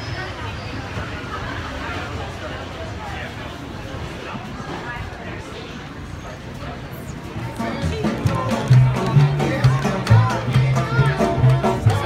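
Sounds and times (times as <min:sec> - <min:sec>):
market crowd chatter: 0:00.0 - 0:12.0
street musicians playing folk music: 0:06.5 - 0:12.0.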